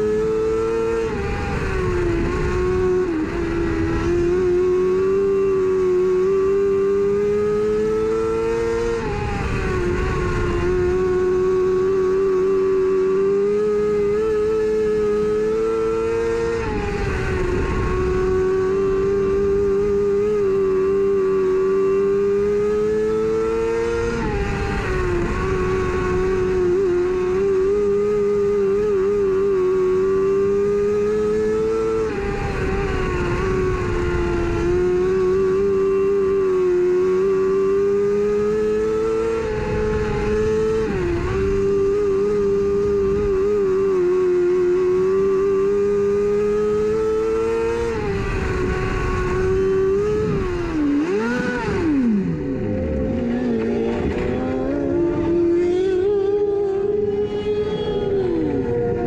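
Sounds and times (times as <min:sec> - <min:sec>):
race car engine at high revs: 0:00.0 - 0:59.0.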